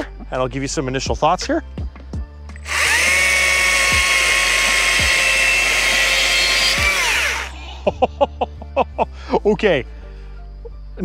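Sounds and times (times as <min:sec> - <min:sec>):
cordless chainsaw cutting wood: 0:02.6 - 0:07.6.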